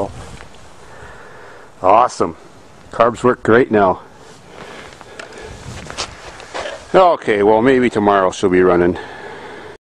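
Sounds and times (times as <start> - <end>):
faint shuffling: 3.8 - 7.8.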